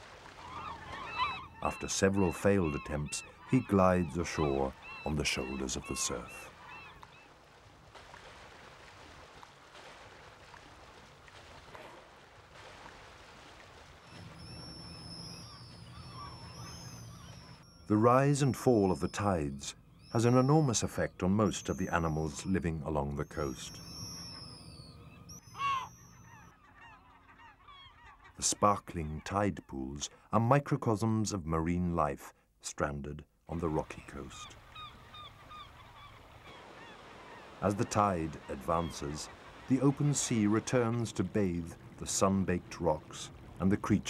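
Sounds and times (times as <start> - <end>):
seabirds honking calls: 0.2 - 7.4, 14.0 - 29.3, 33.6 - 44.0
high whistling bird calls: 14.1 - 18.0, 23.3 - 26.5.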